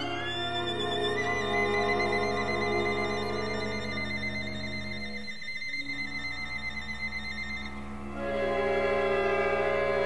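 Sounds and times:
violin and ensemble sustained tones: 0.0 - 10.0.

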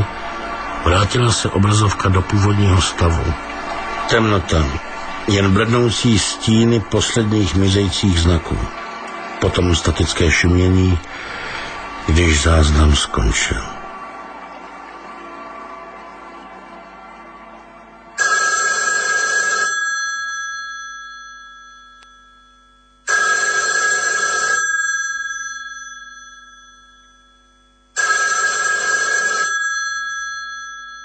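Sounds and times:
telephone bell ringing: 18.2 - 31.0.

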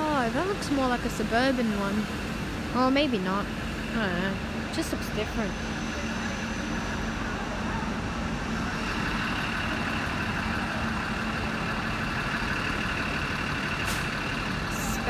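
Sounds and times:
train machinery hum: 0.0 - 15.0.

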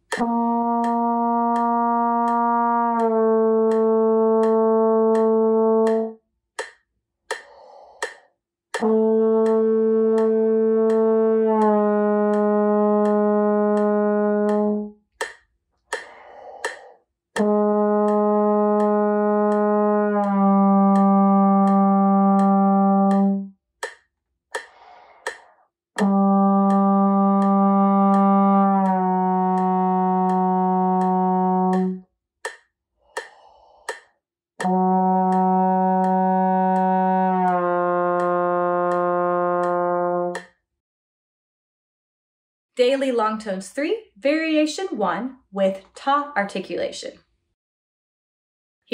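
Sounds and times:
click track ticking: 0.0 - 24.0, 24.6 - 37.6, 38.2 - 40.6
trombone playing long tones: 0.2 - 6.1, 8.8 - 15.0, 17.4 - 23.5, 26.0 - 32.0, 34.6 - 40.4.

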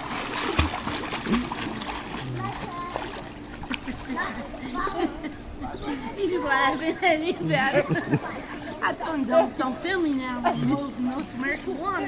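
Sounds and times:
swimmer splashing in pool water: 0.0 - 4.6.

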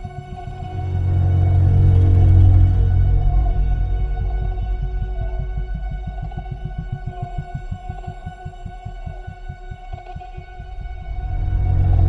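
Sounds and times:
sustained high drone: 0.0 - 9.4
rapid low pulse: 0.0 - 12.0.

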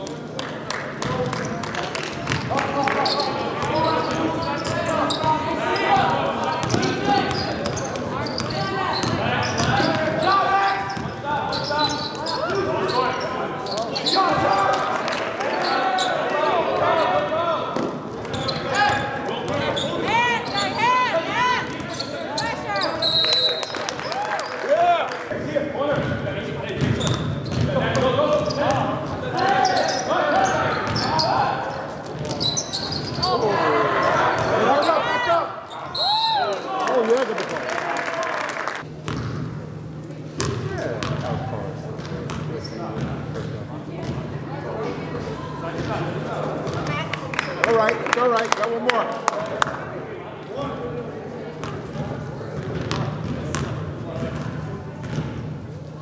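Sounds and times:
basketball bouncing on court: 1.0 - 5.4, 6.0 - 10.2, 26.0 - 29.2, 39.0 - 39.6, 40.4 - 44.3, 45.8 - 46.0, 51.6 - 55.6
shoes squeaking: 2.3 - 17.3, 18.2 - 23.9, 26.8 - 35.1
referee whistle blasts: 22.8 - 23.7.

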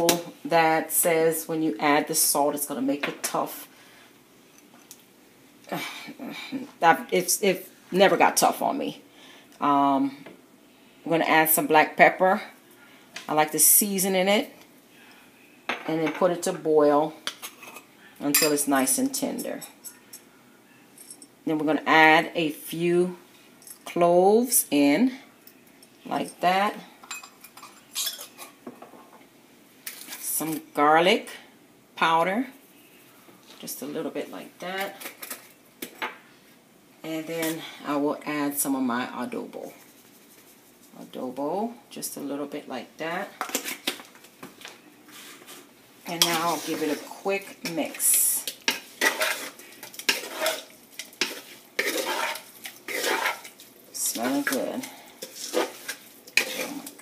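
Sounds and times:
meat scraping in metal pot: 45.4 - 57.0.

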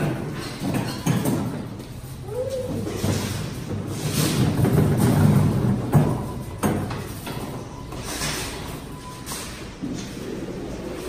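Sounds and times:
shopping cart rattling on concrete: 2.4 - 11.0
cart pulled from nested carts: 2.7 - 11.0.

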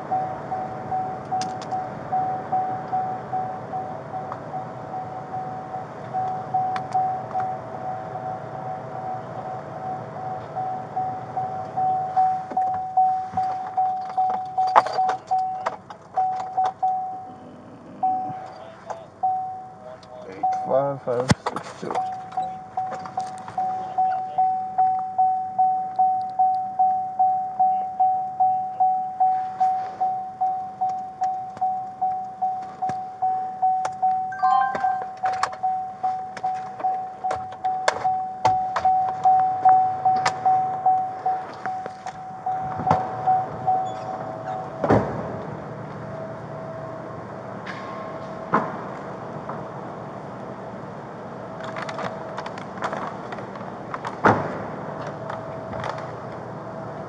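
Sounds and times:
electronic warning chime: 23.6 - 36.3.

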